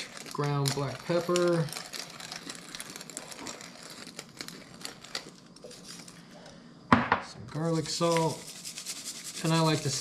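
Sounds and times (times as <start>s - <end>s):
pepper mill grinding: 0.0s - 6.2s, 7.7s - 10.0s.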